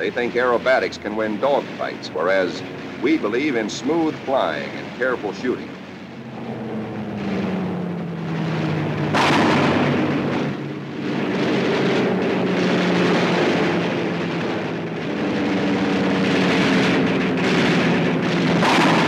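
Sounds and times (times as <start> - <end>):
aircraft engines droning: 0.0 - 19.0
explosions: 0.0 - 19.0
gunfire bursts: 7.2 - 19.0.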